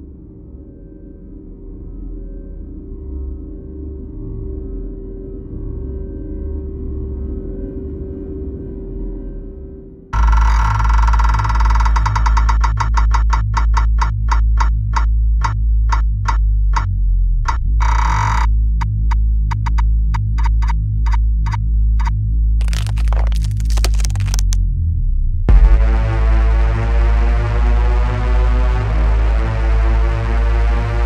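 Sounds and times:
faint drone: 0:00.0 - 0:12.9
deep pulsing bass: 0:10.1 - 0:31.0
fast ticking rhythm: 0:10.2 - 0:21.2.

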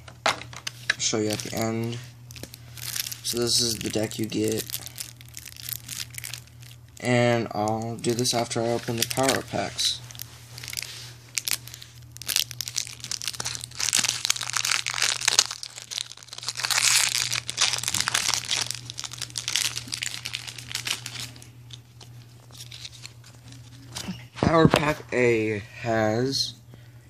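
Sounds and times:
foil wrapper crinkling: 0:01.0 - 0:24.0.

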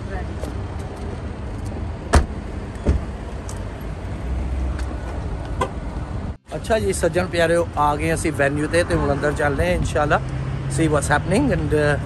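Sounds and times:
traffic rumble: 0:00.0 - 0:12.0
car door shutting: 0:02.1 - 0:03.2.

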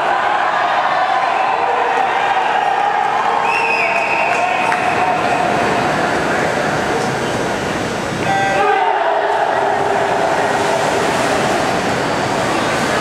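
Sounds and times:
crowd cheering: 0:00.0 - 0:07.0, 0:08.2 - 0:13.0
indoor crowd noise: 0:00.0 - 0:13.0.

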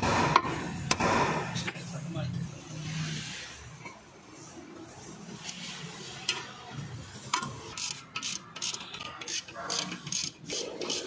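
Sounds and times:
ratchet wrench clicking: 0:07.3 - 0:11.0.

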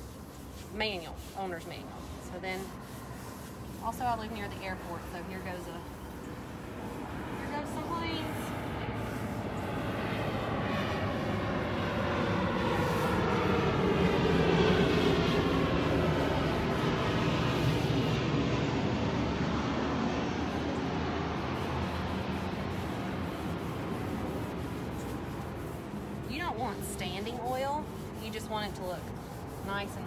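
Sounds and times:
airplane flying low overhead: 0:00.0 - 0:30.0.

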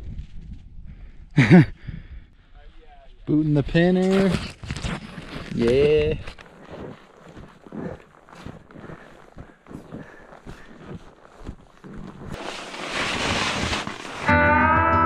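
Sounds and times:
ski boots crunching snow: 0:03.6 - 0:14.4
music with sustained chords: 0:14.3 - 0:15.0.

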